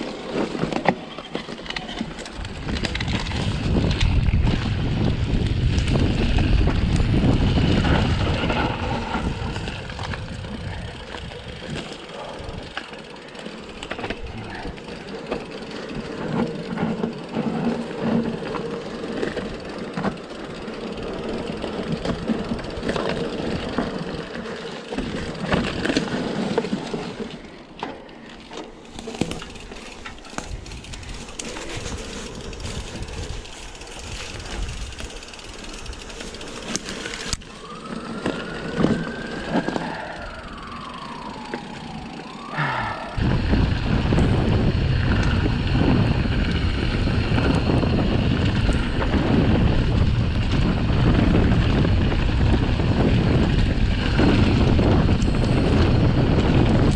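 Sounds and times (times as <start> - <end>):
bike rattling and clicking: 0.0 - 56.9
bike tyres on dirt: 0.0 - 56.9
whine: 34.2 - 56.9.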